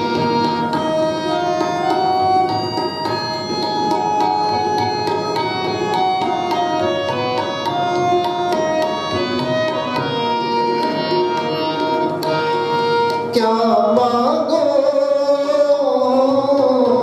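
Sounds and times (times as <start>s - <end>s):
harmonium melody: 0.0s - 17.0s
tabla drumming: 0.0s - 17.0s.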